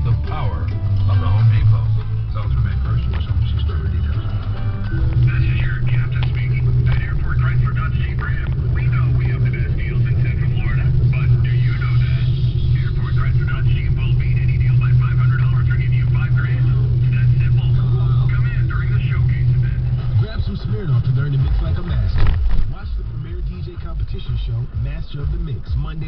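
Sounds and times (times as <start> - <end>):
car engine and tyres drone: 0.0 - 26.0
voice on car radio: 0.0 - 26.0.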